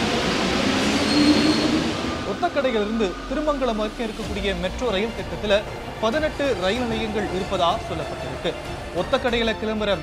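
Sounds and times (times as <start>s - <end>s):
metro train rushing: 0.0s - 9.5s.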